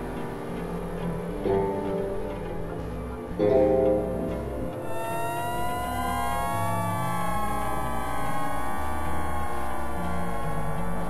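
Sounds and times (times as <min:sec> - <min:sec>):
electronic drone music: 0:00.0 - 0:11.0.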